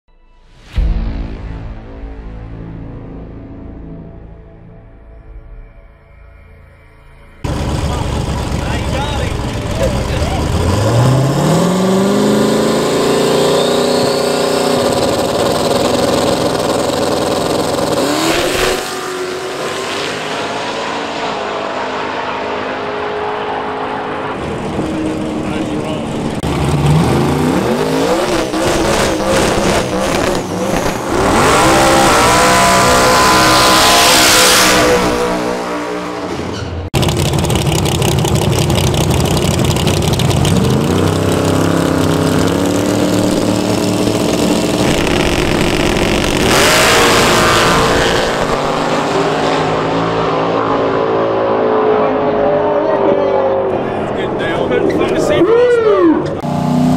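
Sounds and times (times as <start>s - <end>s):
engine running steadily: 7.4s - 18.2s, 24.4s - 27.6s, 36.9s - 46.9s
drag car engine revving: 7.4s - 56.9s.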